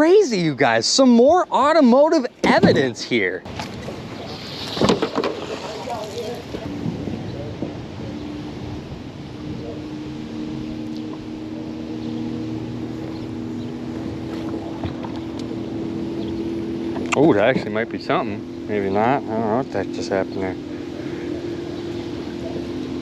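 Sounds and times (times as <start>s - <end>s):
electric trolling motor humming: 3.7s - 23.0s.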